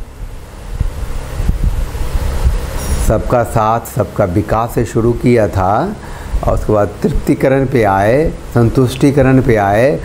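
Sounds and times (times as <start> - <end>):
low rumbling on microphone: 0.0 - 3.8.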